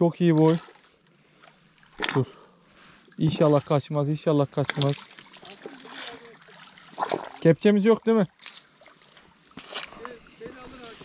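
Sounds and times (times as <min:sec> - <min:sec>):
faint splashing water: 0:00.3 - 0:11.0.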